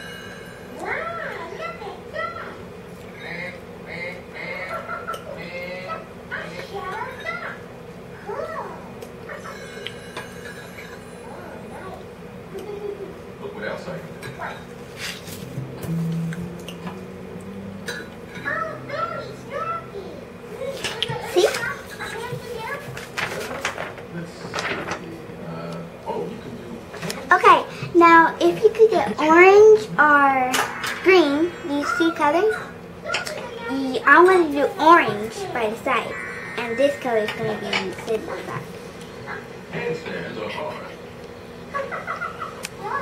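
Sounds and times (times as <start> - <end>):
child speaking indistinctly: 18.4 - 23.0, 27.3 - 38.7.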